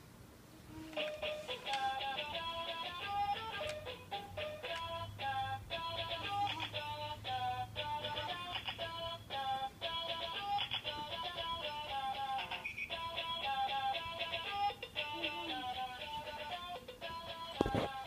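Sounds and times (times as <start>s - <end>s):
electronic toy tune: 11.3s - 13.7s.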